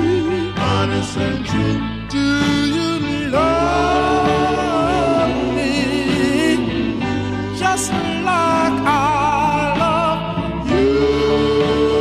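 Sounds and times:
male vocal group harmony: 0.0s - 12.0s.

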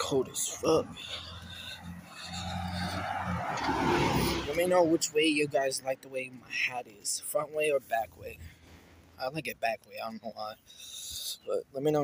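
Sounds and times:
tyre and road noise: 0.0s - 12.0s
vehicle engine hum: 0.0s - 12.0s.

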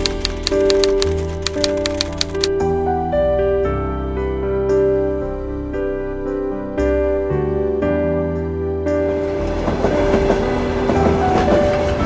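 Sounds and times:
gentle instrumental music: 0.0s - 12.0s
train rumbling on rails: 9.0s - 12.0s.

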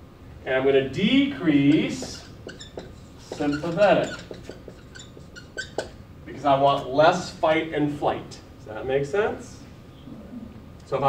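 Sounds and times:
brief high squeaks: 1.9s - 6.0s.

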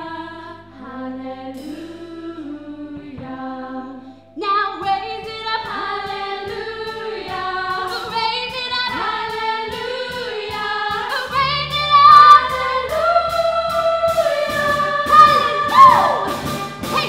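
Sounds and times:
women's choir singing in harmony: 0.0s - 4.1s, 4.7s - 17.0s.

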